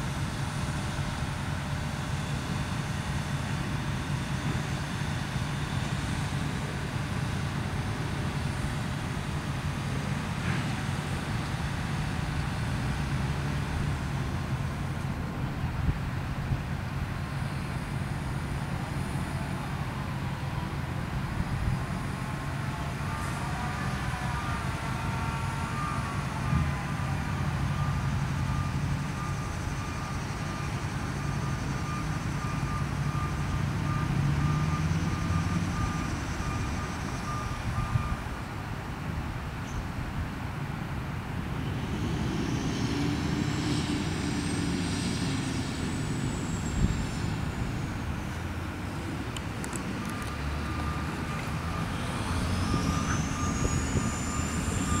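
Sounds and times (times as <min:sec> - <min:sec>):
crane engine drone: 0:00.0 - 0:55.0.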